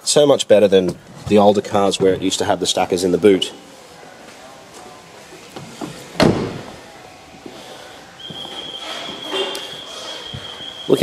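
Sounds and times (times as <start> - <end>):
car door shutting: 5.6 - 6.8.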